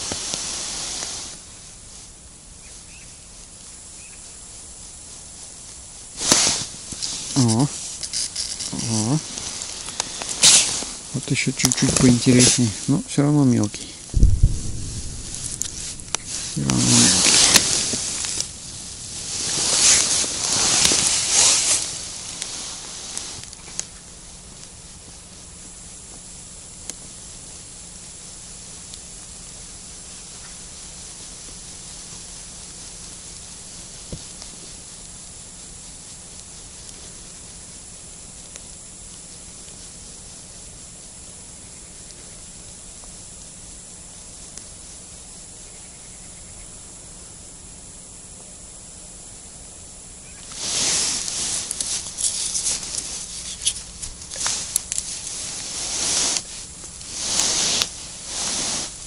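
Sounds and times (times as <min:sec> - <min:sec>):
low outdoor hiss: 0:00.0 - 0:59.0
faint ticks: 0:22.3 - 0:27.2, 0:44.4 - 0:44.7
clothing rustling and scraping: 0:50.5 - 0:58.9.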